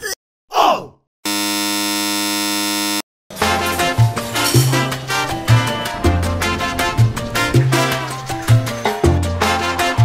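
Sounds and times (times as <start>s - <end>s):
electronic buzzer tone: 1.2s - 3.0s
background music: 3.3s - 10.0s.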